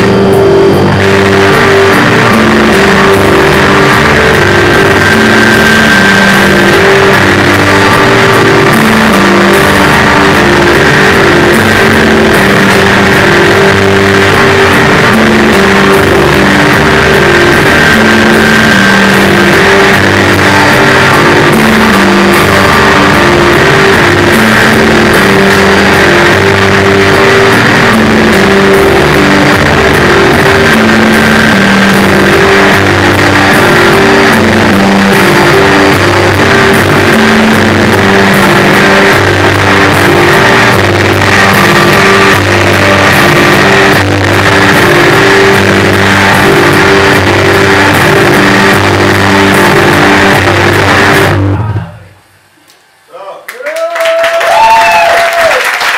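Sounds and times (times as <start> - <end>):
loud live band music: 0.0 - 52.1.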